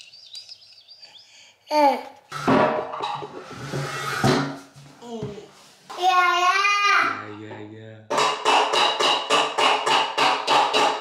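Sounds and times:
sharp knock: 0:08.1 - 0:11.0.

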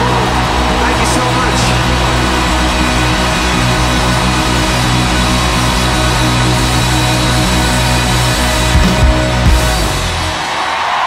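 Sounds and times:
held bass notes: 0:00.0 - 0:10.4
live rock band playing: 0:00.0 - 0:11.0.

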